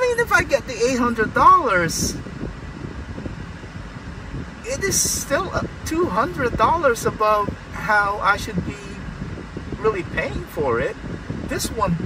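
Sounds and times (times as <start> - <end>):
car idling rumble: 0.0 - 12.0
ventilation fan: 0.0 - 12.0.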